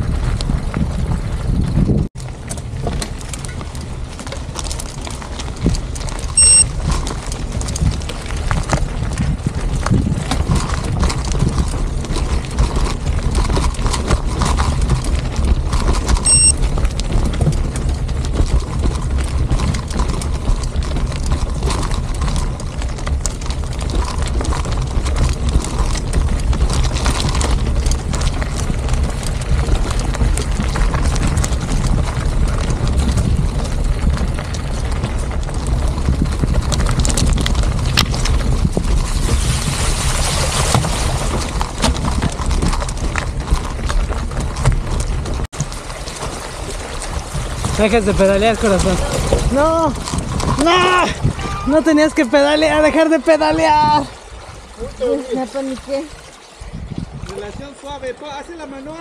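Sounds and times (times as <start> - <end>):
bike rattles and knocks: 0.0 - 59.0
tyres crunching over gravel: 0.0 - 59.0
wind rumble on microphone: 0.0 - 59.0.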